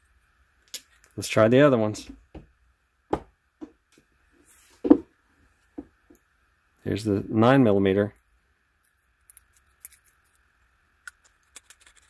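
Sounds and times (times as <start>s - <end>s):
small plastic clicks and scrapes: 11.1s - 12.0s.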